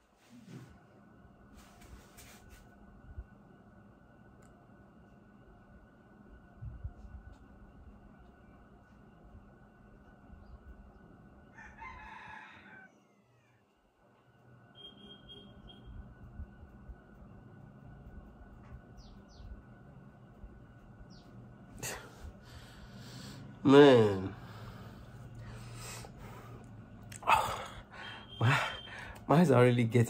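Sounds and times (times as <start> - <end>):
distant bird call: 27.3 - 29.2.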